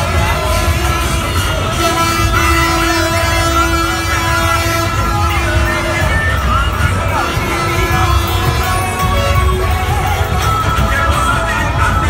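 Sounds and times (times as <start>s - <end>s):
vehicle horn blast: 0.0s - 11.0s
procession music: 0.0s - 12.0s
tractor engines rumbling: 0.0s - 12.0s.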